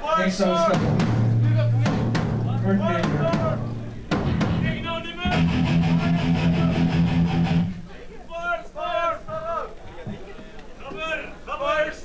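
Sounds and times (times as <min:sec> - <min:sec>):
drum hits: 0:00.5 - 0:07.9
distorted electric guitar chord: 0:00.8 - 0:07.9.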